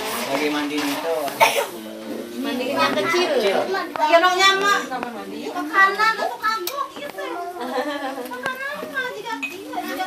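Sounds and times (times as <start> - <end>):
people talking: 0.2 - 10.0
person coughing: 1.4 - 1.8.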